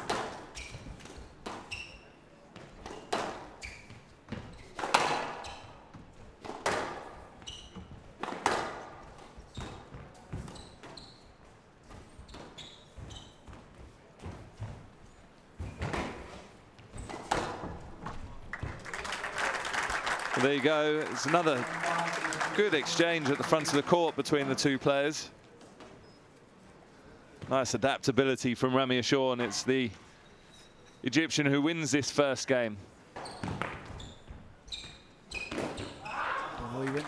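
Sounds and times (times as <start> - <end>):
shoe squeaks: 0.4 - 2.3, 2.9 - 5.9, 7.3 - 8.0, 9.5 - 13.6, 25.9 - 26.3, 30.2 - 31.1, 33.2 - 36.1
applause: 18.5 - 24.8, 36.8 - 37.0.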